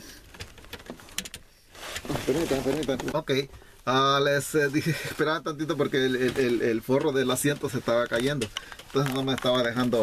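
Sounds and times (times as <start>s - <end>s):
hands rustling and handling: 0.0s - 10.0s.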